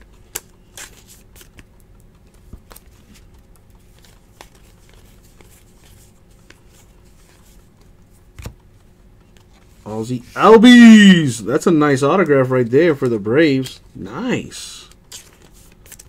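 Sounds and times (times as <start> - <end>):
trading cards clicking and flicking: 0.0 - 9.8, 12.0 - 16.0
low room hum: 0.0 - 16.0.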